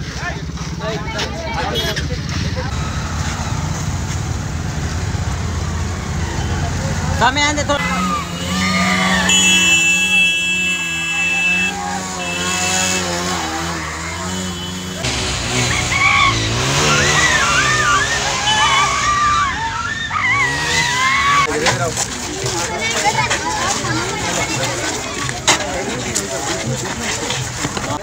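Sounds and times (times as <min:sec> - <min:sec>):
motorcycle engines running: 0:00.0 - 0:28.0
voices shouting: 0:00.9 - 0:28.0.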